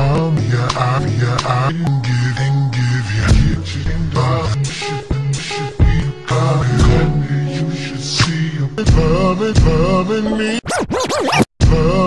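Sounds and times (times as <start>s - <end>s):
slowed r and b song: 1.9s - 10.2s
record scratch: 10.6s - 11.5s.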